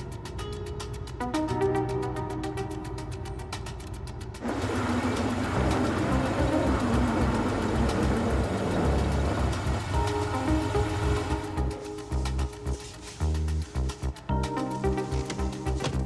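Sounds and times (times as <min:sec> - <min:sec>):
background music with steady tones: 0:00.0 - 0:16.0.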